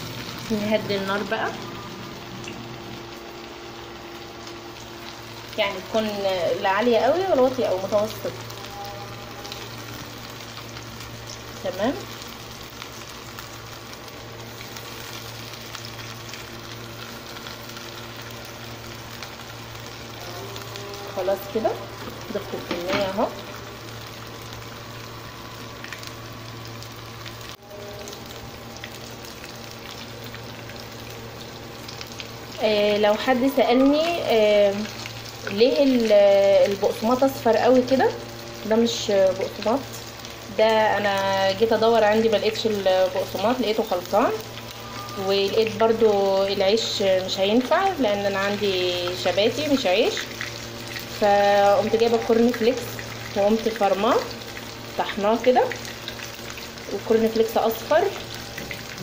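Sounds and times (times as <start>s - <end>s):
faint steady hum: 0.0s - 59.0s
food sizzling in hot oil: 0.0s - 59.0s.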